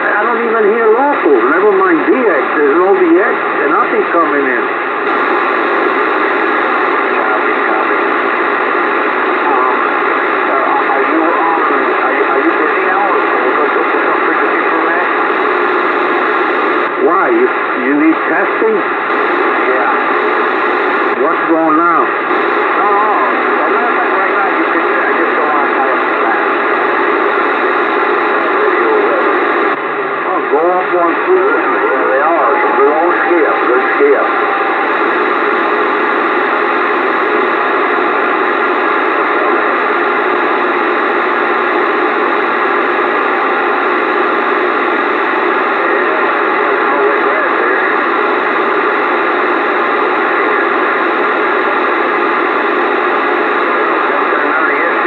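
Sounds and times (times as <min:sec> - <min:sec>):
radio static: 0:00.0 - 0:55.0.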